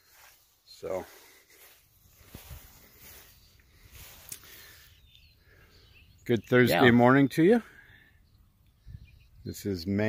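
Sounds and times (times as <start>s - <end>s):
distant bird chirps: 0.0s - 10.0s.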